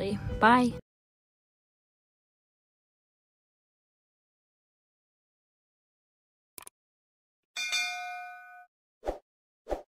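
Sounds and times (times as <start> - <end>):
notification bell ding: 7.6 - 8.7.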